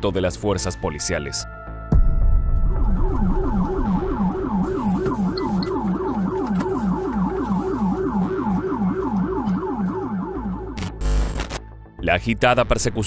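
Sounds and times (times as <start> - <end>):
police siren yelping: 3.0 - 11.3.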